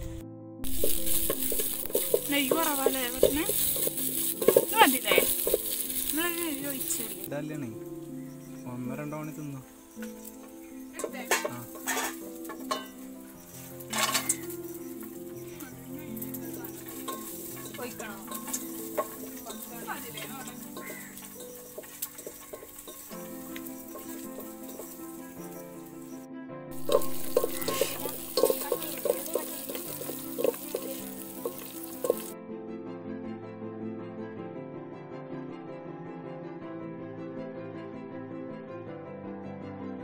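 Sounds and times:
food frying with crackles: 0.0 - 7.3, 9.8 - 32.4
soft background music: 0.0 - 40.0
metal ladle stirring in a pot: 0.6 - 7.2, 11.0 - 13.0, 13.8 - 14.6, 16.2 - 19.8, 20.5 - 25.5, 26.7 - 32.4.

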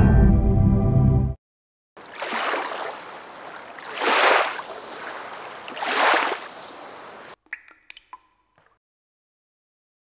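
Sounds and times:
water splashing: 2.0 - 8.8
ringing water drips: 7.3 - 8.8.

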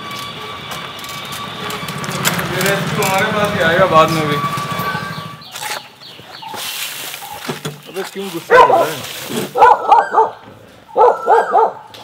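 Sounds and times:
dog barking: 8.5 - 11.9.

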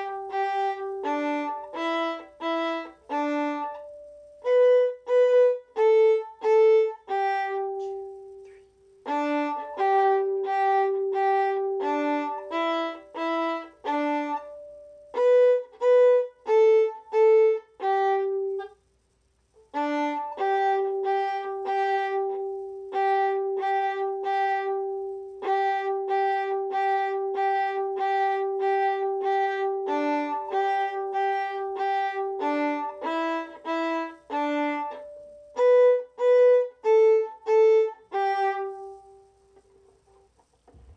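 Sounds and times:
solo violin playing: 0.0 - 18.8, 19.6 - 39.8.

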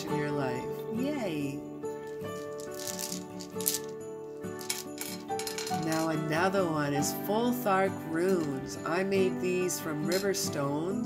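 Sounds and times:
background music: 0.0 - 11.0
stones clacking: 2.1 - 3.9, 4.6 - 6.3.

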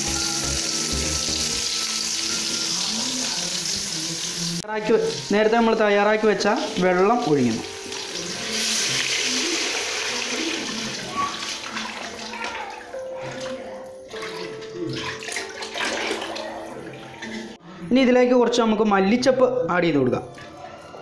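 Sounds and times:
water pouring into a pot: 6.6 - 13.0.

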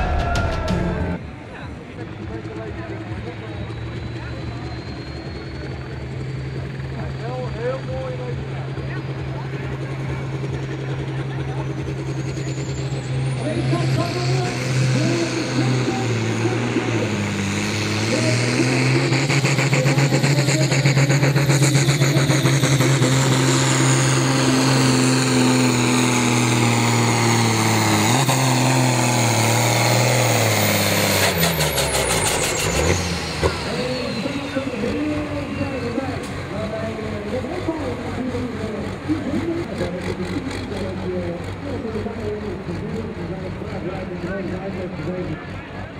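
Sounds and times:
tractor diesel engine at full throttle: 0.0 - 45.9.

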